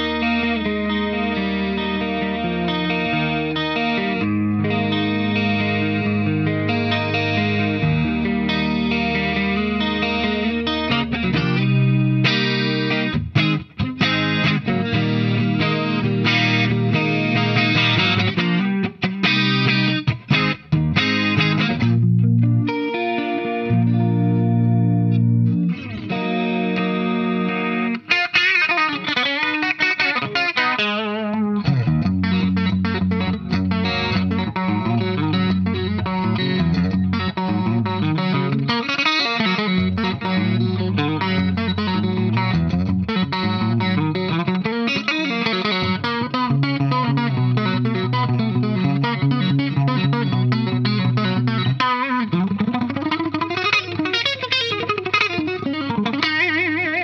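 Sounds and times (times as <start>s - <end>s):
clean electric guitar: 0.0s - 57.0s.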